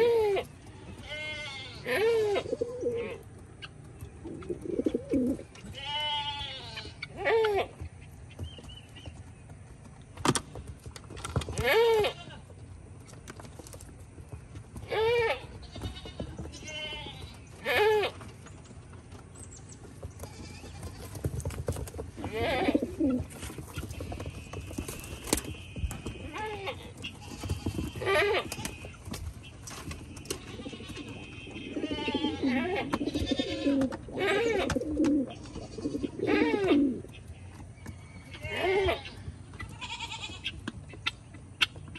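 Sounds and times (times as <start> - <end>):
goats bleating: 0.0 - 3.2, 5.6 - 7.8, 11.5 - 12.5, 14.8 - 18.2, 22.2 - 23.2, 24.1 - 29.0, 30.2 - 37.0, 38.3 - 40.6
pigeons pecking seed: 0.0 - 39.8.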